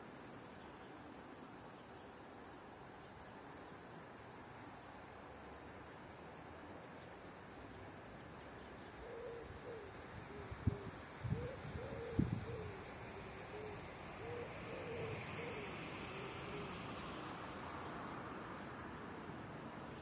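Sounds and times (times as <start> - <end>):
bird cooing: 9.0 - 17.0
wind noise: 10.5 - 12.7.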